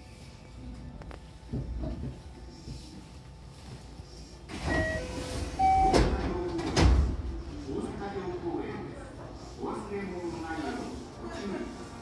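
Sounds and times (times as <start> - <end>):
door chime tones: 4.7 - 6.1.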